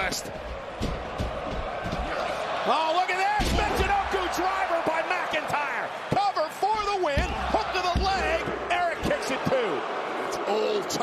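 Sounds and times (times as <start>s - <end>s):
arena crowd shouting and cheering: 0.0s - 11.0s.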